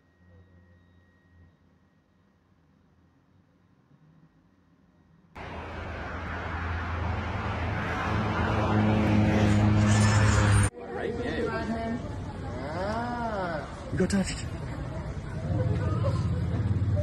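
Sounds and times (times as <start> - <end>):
car engine and road noise: 5.4 - 10.8, 14.0 - 17.0.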